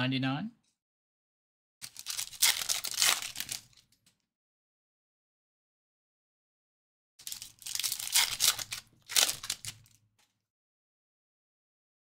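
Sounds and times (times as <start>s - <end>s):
foil wrapper tearing and crinkling: 1.8s - 3.8s, 7.2s - 10.0s
loud foil rips: 1.8s - 3.8s, 7.2s - 9.8s.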